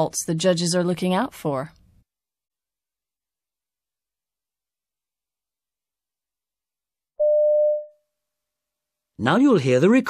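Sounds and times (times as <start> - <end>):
steady electronic beep: 7.2 - 7.9.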